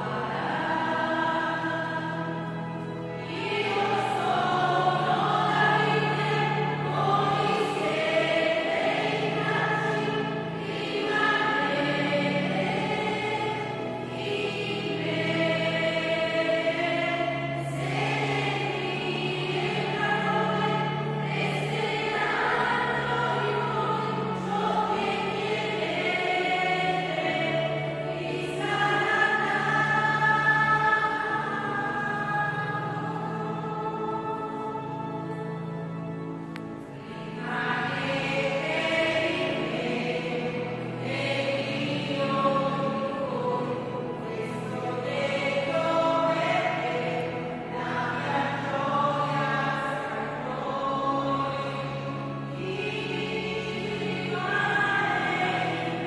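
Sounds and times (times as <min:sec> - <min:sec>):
church choir singing a hymn: 0:00.0 - 0:56.0.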